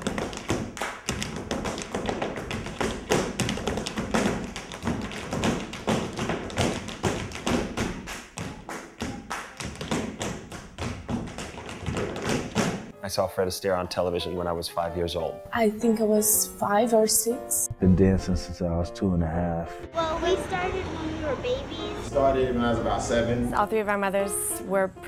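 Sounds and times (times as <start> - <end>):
tap shoes clicking on hard floor: 0.0 - 12.9.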